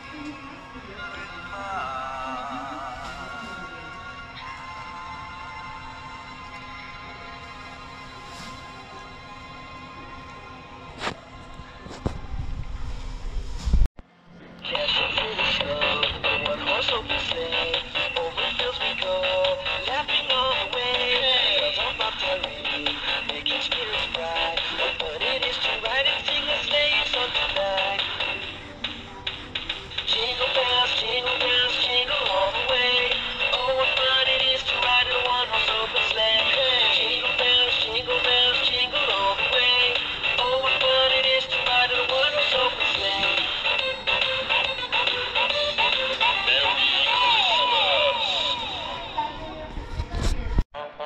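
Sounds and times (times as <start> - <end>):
toy playing song with singing: 29.9 - 48.8.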